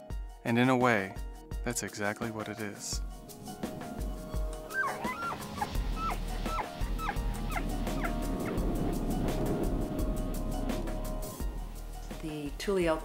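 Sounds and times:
elk bugling: 0:03.5 - 0:09.5.

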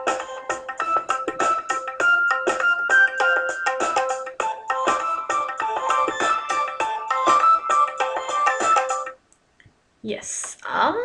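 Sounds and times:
hip-hop drum loop: 0:00.0 - 0:09.2
steady melodic notes: 0:00.0 - 0:09.2
tabla loop: 0:00.0 - 0:09.2.

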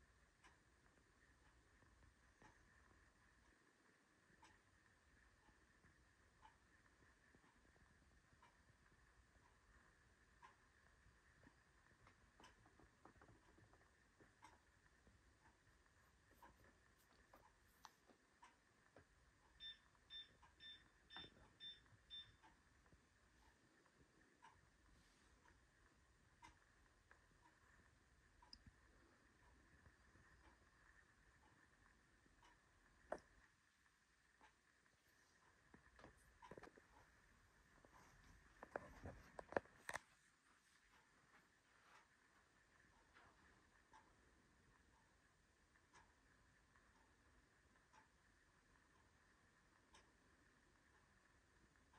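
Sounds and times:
faint clicks: 0:00.0 - 0:40.2.

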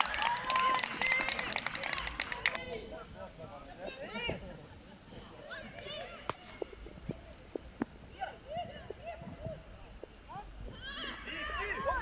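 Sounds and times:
distant shouts of young footballers: 0:10.6 - 0:12.0.

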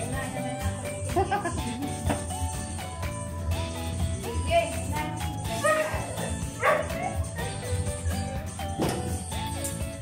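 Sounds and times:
background music: 0:00.0 - 0:10.0
dog barking: 0:06.6 - 0:07.2.

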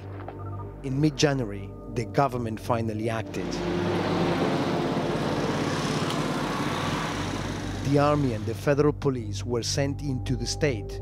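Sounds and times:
truck engine running: 0:03.4 - 0:08.6.

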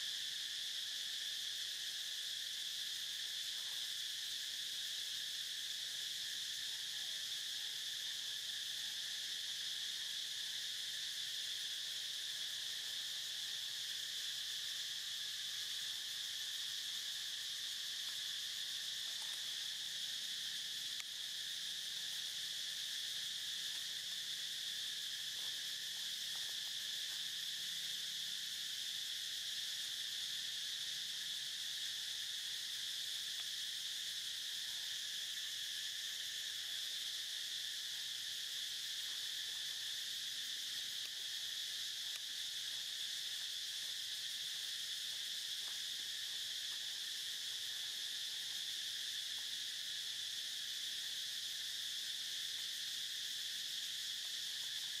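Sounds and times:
high-pitched insect chorus: 0:00.0 - 0:55.0.

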